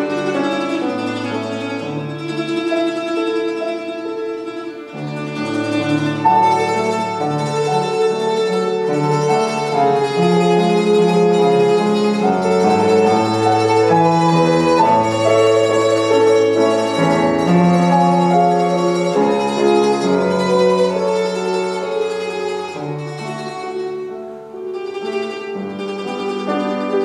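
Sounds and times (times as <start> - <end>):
mandoloncello and piano duet: 0.0 - 27.0.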